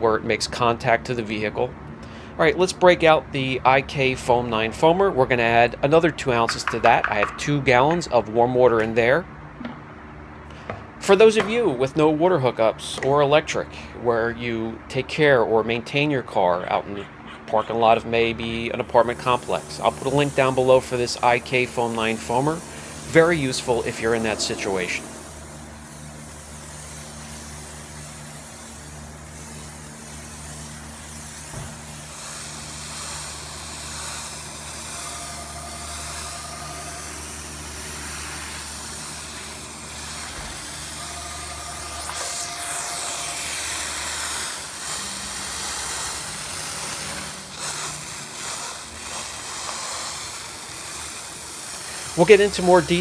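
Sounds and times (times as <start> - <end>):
low steady hum: 16.8 - 28.7
foam sprayer hissing: 18.8 - 53.0.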